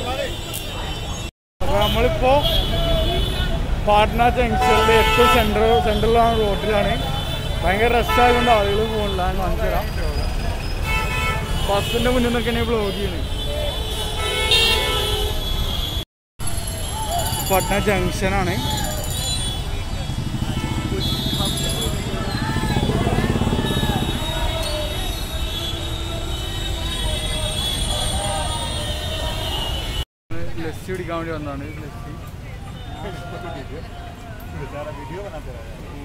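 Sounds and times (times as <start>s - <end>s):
traffic rumble: 0.0s - 36.0s
vehicle horn: 4.6s - 9.4s, 10.8s - 16.0s, 19.2s - 30.0s
low rumble of engines: 16.4s - 29.5s.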